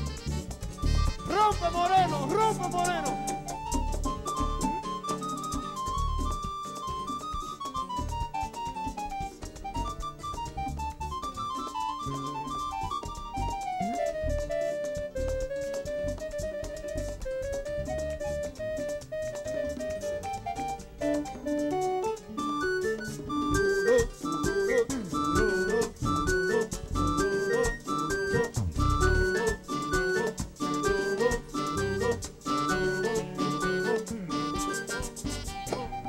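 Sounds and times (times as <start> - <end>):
keyboard melody: 0.0 - 36.0
merengue band playing: 0.0 - 36.0.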